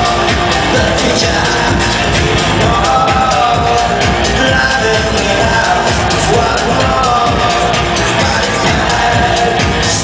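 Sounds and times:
live electronic rock band: 0.0 - 10.0.

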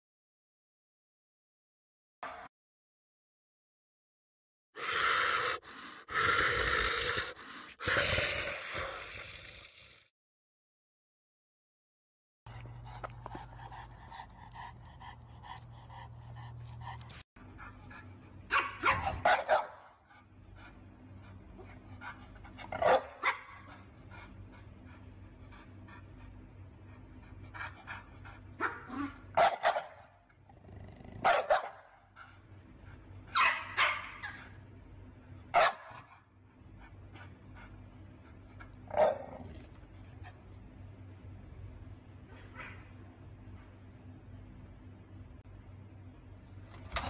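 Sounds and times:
dog barking: 18.5 - 20.0, 22.8 - 23.7, 28.6 - 30.1, 31.2 - 32.0, 33.3 - 34.6, 35.5 - 36.2, 38.9 - 39.6, 42.3 - 43.0.

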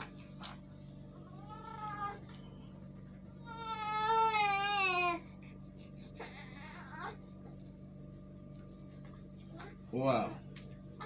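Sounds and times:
baby crying: 1.3 - 2.2, 3.4 - 5.2.

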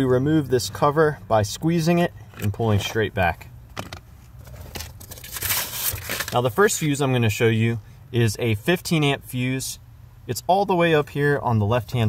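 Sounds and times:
plastic cover rustling and crinkling: 4.3 - 6.6.

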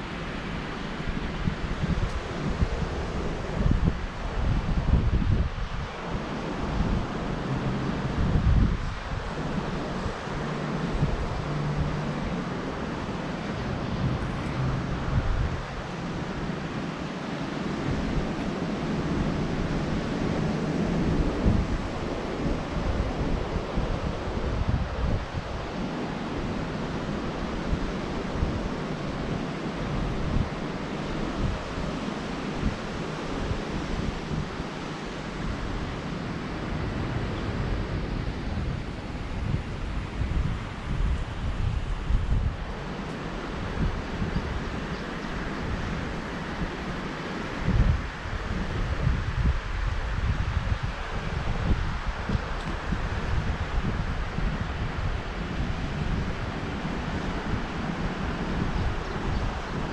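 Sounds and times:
surf washing: 0.0 - 59.9
wind buffeting microphone: 0.0 - 59.9.

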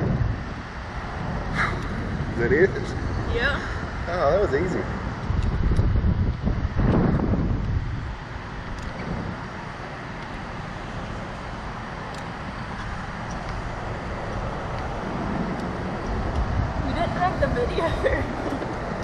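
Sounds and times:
wind rushing over microphone: 0.0 - 19.0.

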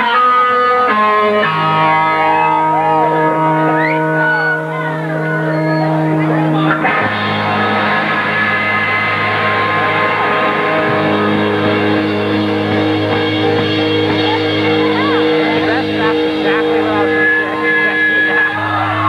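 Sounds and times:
punk rock band playing live: 0.0 - 19.0.

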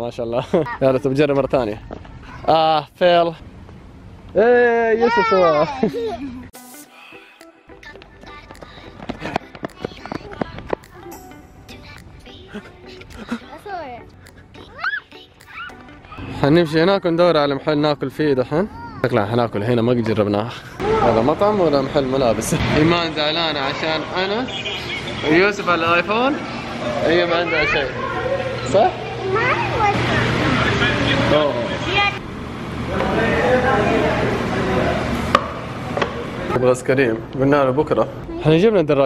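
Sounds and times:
child speaking: 5.0 - 6.2, 12.5 - 16.3, 18.7 - 19.1, 27.3 - 30.2, 31.8 - 32.2
busy room hum: 8.3 - 39.0
toddler squealing: 14.7 - 16.3.

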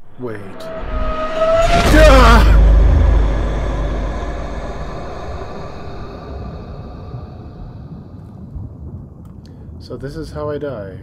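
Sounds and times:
sudden loud hit: 0.0 - 8.4
deep boom and rumble: 0.0 - 11.0.

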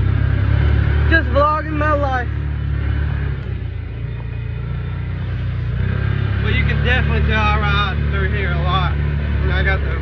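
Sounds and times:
utility vehicle engine droning: 0.0 - 10.0.

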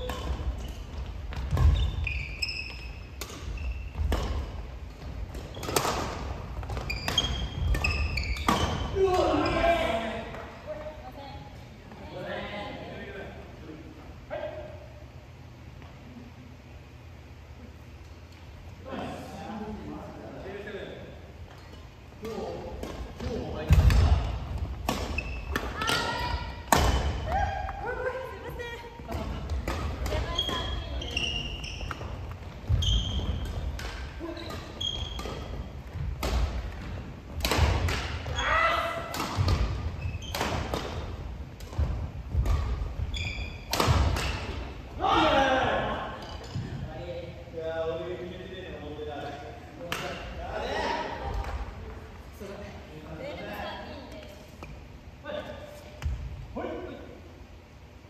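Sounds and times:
shoe squeaks: 0.0 - 4.0, 6.7 - 9.6, 25.1 - 25.6, 30.2 - 33.6, 34.2 - 35.6, 39.9 - 40.5, 43.0 - 44.5
steady low hum: 0.0 - 58.0
racket hitting shuttlecock: 2.8 - 9.0, 24.8 - 27.4, 31.8 - 38.3, 39.0 - 44.8
loud shout: 45.0 - 46.0.

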